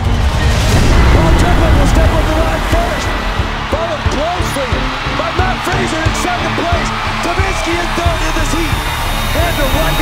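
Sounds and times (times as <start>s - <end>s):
arena crowd noise: 0.0s - 10.0s
background music: 0.0s - 10.0s.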